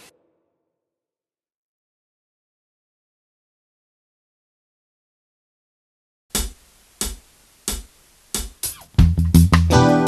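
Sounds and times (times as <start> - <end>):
sharp drum clicks: 6.3 - 9.7.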